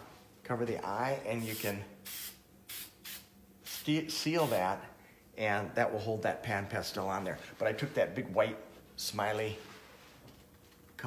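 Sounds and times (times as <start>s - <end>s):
aerosol can spraying: 1.4s - 4.7s.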